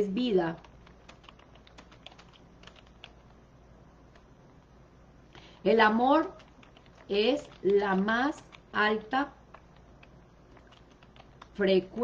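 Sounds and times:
typing on computer keyboard: 0.6 - 3.4, 6.2 - 11.6.

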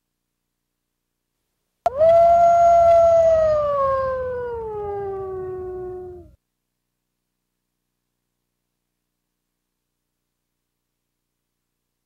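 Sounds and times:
wolf howl: 1.9 - 6.4.

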